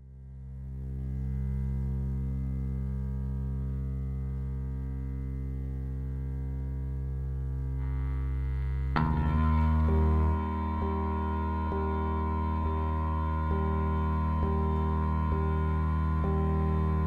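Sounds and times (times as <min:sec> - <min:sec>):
low drone of held tones: 0:00.0 - 0:17.0
bright struck chord: 0:09.0 - 0:17.0.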